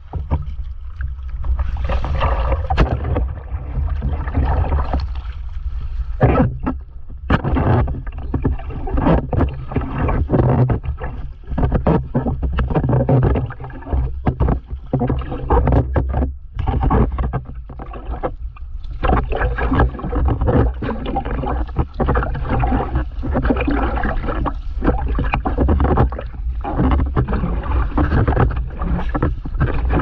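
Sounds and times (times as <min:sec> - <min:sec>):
paddle splashing in water: 0:00.0 - 0:30.0.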